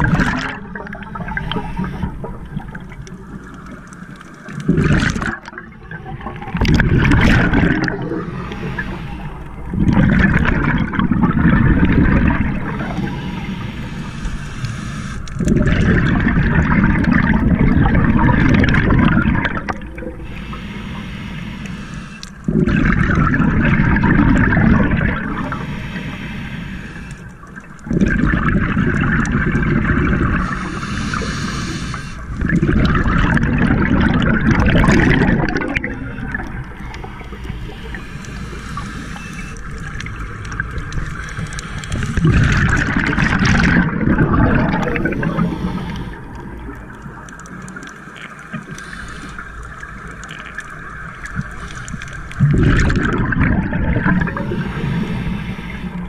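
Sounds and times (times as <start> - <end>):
diver's exhaled bubbles gurgling: 0.0 - 56.0.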